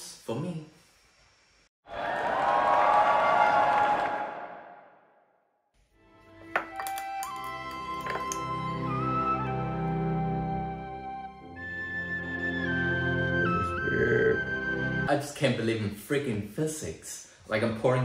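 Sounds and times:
soft background music: 6.0 - 15.2.

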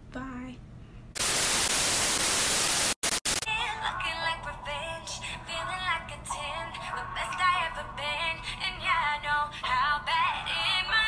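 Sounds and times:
television static hiss: 1.2 - 4.3.

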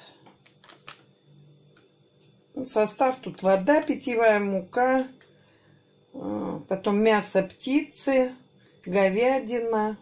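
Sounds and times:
plastic food pack crinkling: 0.3 - 1.1.

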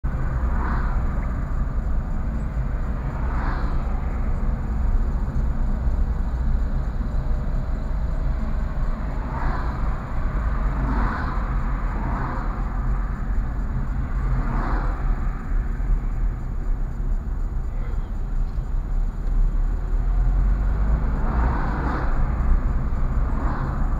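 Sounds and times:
car cabin road rumble: 0.0 - 23.9.

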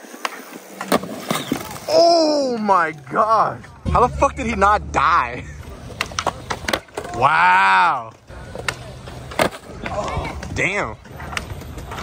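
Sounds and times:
skateboard wheels rolling on concrete: 0.0 - 12.0
skateboard knocks and clatters: 5.8 - 7.3, 8.3 - 12.0.

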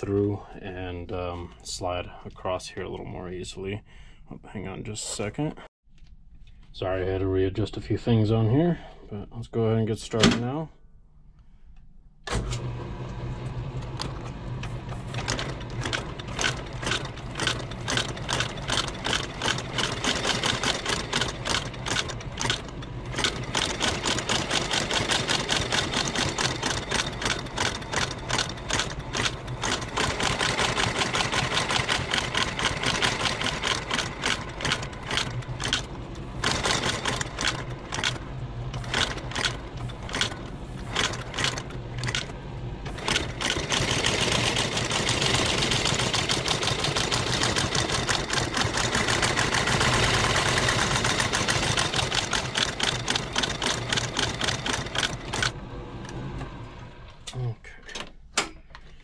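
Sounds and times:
motor hum: 12.2 - 57.3
stitching machine clatter: 13.9 - 55.6.

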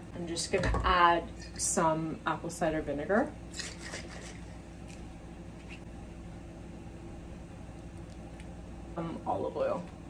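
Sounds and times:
room hum: 0.0 - 10.0.

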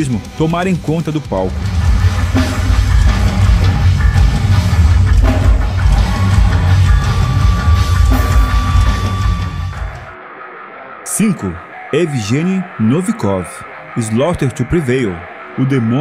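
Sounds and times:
pounding drum kit: 0.0 - 10.1
heavy metal band playing live: 0.0 - 10.2.

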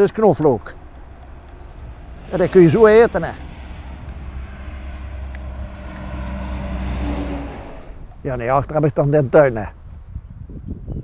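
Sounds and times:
distant engine drone: 0.0 - 8.9
steady low rumble: 0.0 - 9.6.

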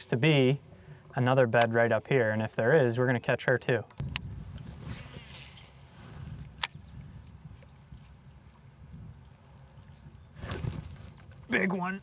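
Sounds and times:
wind rumble on microphone: 4.0 - 11.5
short rush of noise: 4.6 - 6.4.

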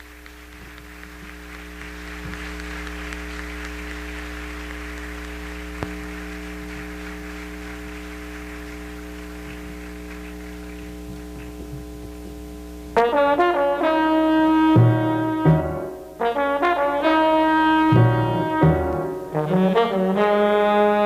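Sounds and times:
audience applause: 0.0 - 11.9
electrical mains hum: 0.0 - 16.5.

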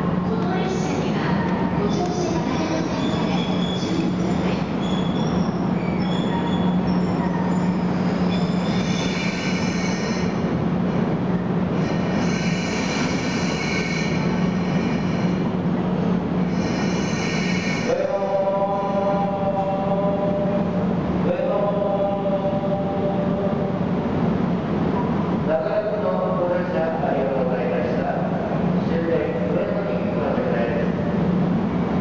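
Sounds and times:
electric locomotive low hum: 0.0 - 32.0
wheels and brakes squealing: 2.6 - 10.3.

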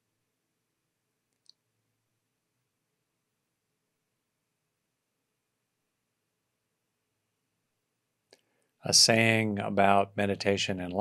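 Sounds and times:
faint click: 1.3 - 1.6.

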